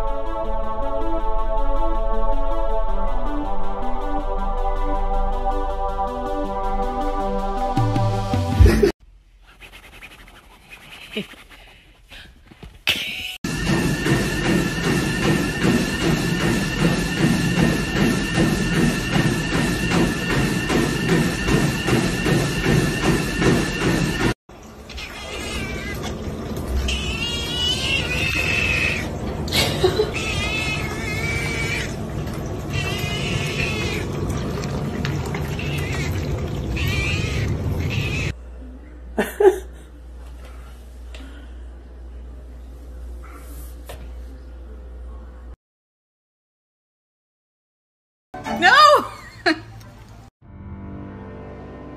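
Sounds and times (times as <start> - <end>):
cat meowing: 24.9 - 26.1, 26.9 - 29.1, 30.1 - 31.9, 32.7 - 34.0, 35.5 - 36.1, 36.8 - 38.3.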